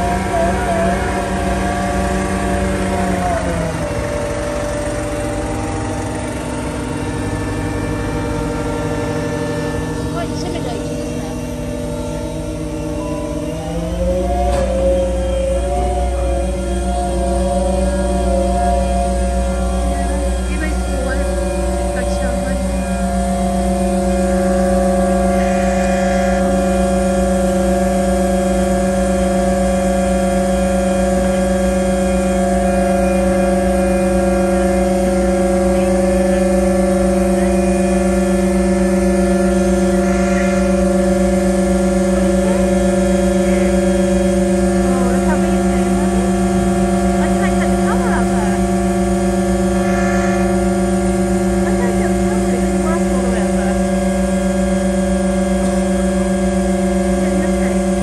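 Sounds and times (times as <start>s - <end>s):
diesel generator droning: 0.0s - 58.0s.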